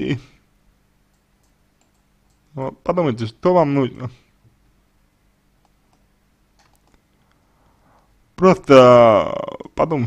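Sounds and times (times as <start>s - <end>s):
faint steady hum: 0.0s - 10.0s
faint clicks: 1.1s - 2.5s
man speaking: 2.5s - 4.3s, 8.4s - 10.0s.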